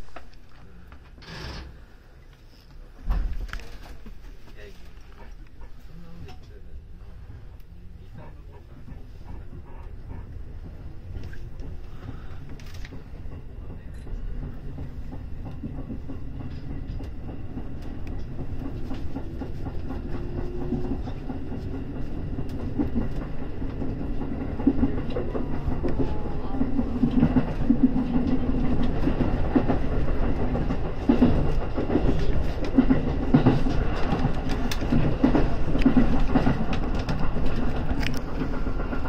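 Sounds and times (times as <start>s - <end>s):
wheels clicking over rail joints: 11.0s - 39.0s.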